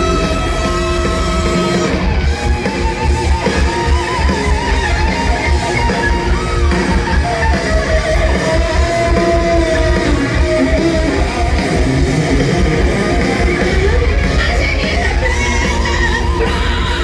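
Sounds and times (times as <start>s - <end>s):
guitar bending high note: 0.0s - 17.0s
heavy metal band playing live: 0.0s - 17.0s.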